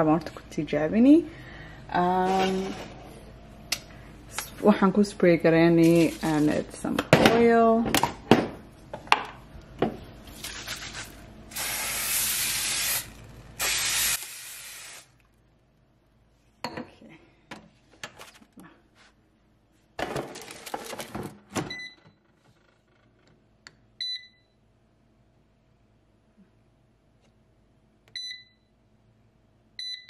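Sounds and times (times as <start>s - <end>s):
oil spray hissing: 11.5s - 15.1s.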